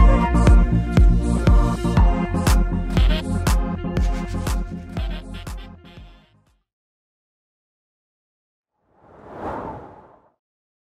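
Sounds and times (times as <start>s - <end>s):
whoosh sound effect: 8.9s - 10.3s.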